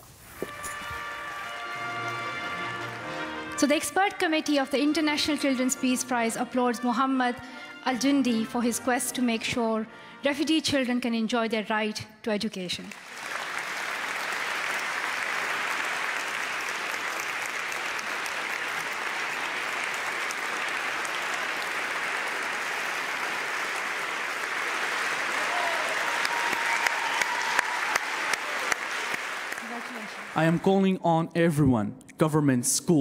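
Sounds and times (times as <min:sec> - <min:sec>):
large audience applauding: 0:01.0 - 0:03.6, 0:12.9 - 0:30.9.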